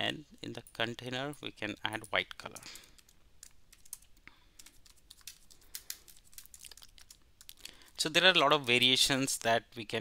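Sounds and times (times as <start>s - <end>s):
typing on a keyboard: 2.5s - 7.6s.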